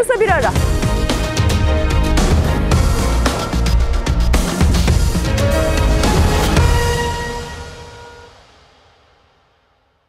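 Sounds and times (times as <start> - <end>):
tv theme music: 0.0 - 8.9.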